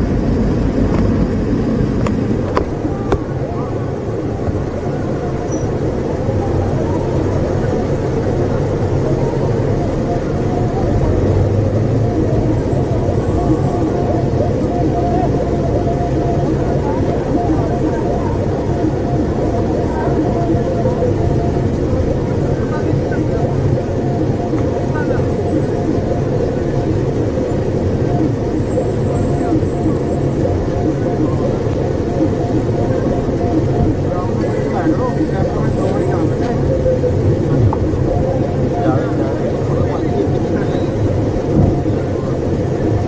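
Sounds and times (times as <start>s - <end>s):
indistinct voices: 0.0s - 43.0s
vehicle road and engine noise: 0.0s - 43.0s.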